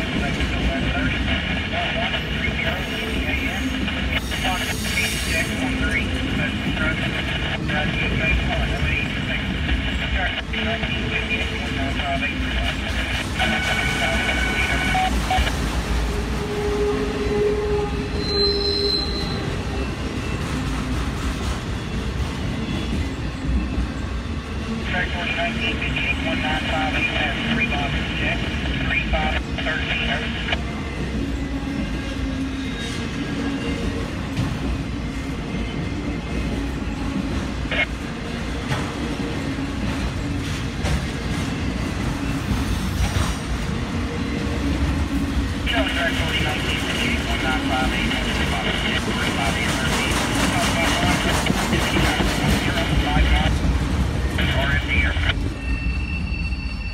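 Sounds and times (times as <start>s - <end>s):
train wheels rumbling on rails: 0.0s - 56.9s
high-pitched wheel squeal: 16.7s - 19.9s, 55.6s - 56.9s.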